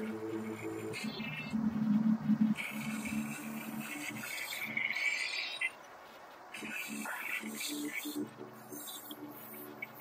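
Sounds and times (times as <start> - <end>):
choppy low synth hum: 0.0 - 5.0
hissing digital noise: 0.0 - 10.0.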